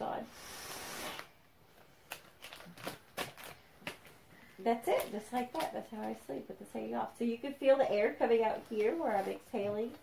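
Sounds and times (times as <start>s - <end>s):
mask clicking and rustling: 1.2s - 4.2s.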